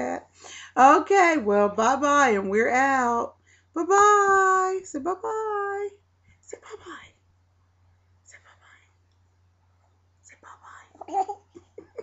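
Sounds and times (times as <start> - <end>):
low electrical hum: 0.0 - 12.0
faint whispering: 6.5 - 7.2, 8.2 - 9.0, 10.2 - 11.4.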